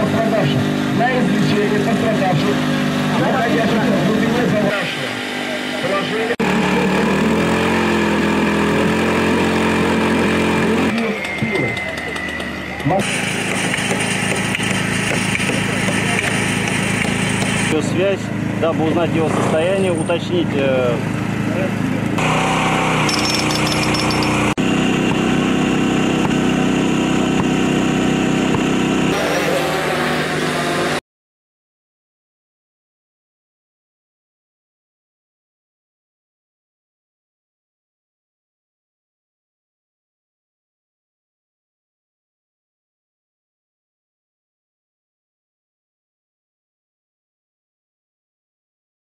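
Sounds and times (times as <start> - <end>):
engine running: 0.0 - 31.0.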